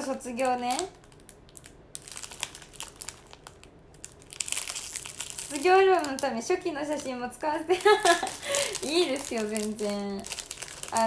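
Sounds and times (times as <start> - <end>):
gift packaging crinkling: 0.3 - 11.0.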